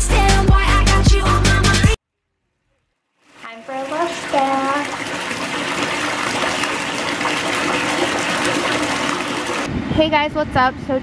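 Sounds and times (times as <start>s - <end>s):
tap water pouring into bathtub: 2.8s - 9.7s.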